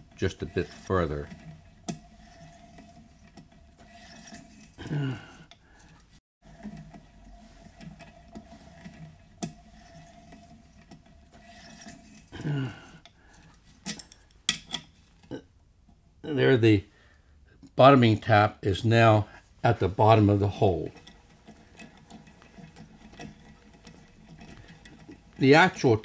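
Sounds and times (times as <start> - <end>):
tap scraping in metal: 0.1 - 4.8, 5.5 - 12.4, 13.0 - 15.3, 20.9 - 25.4.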